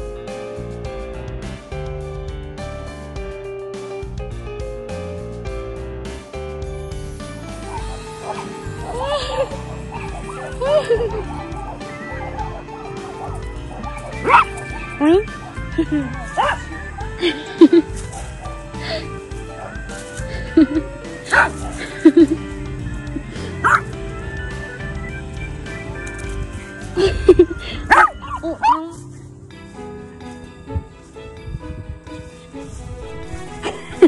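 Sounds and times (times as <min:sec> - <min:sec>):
background music: 0:00.0 - 0:34.0
small dog yipping: 0:07.6 - 0:16.8, 0:21.3 - 0:21.8, 0:23.6 - 0:23.9, 0:27.7 - 0:29.2
dog barking sharply: 0:13.0 - 0:15.6, 0:16.3 - 0:16.7, 0:23.6 - 0:23.8, 0:27.9 - 0:28.8.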